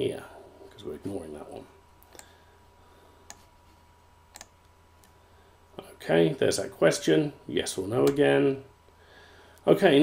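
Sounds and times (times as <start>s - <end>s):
faint steady hum: 0.0s - 10.0s
computer mouse clicking: 3.2s - 3.5s, 4.3s - 5.2s.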